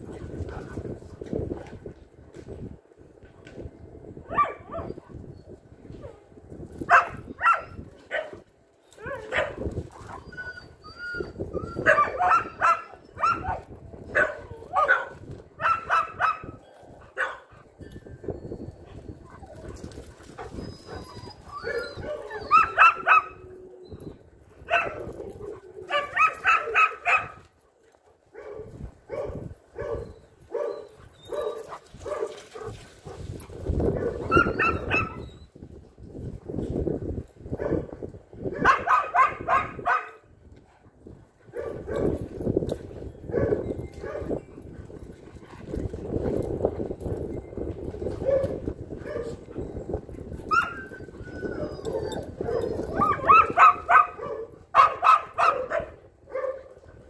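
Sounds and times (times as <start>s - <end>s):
dogs barking and yipping: 4.2s - 35.6s, 37.5s - 40.4s, 41.3s - 57.0s.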